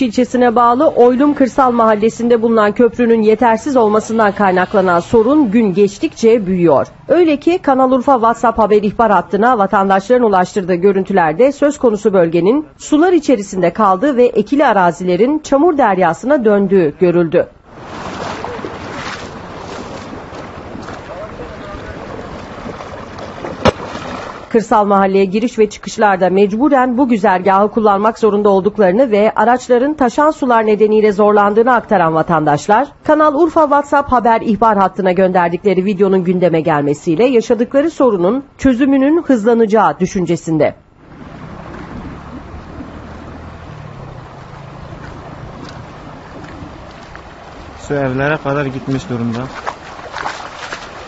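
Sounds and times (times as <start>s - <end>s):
floodwater rushing through culvert: 17.6s - 24.6s, 41.0s - 51.0s
wind buffeting microphone: 17.7s - 24.5s, 41.0s - 51.0s.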